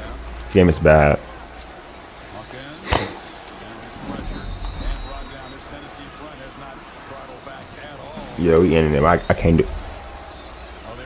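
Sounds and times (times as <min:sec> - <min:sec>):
crowd noise: 0:00.0 - 0:11.0
faint commentary: 0:00.0 - 0:11.0.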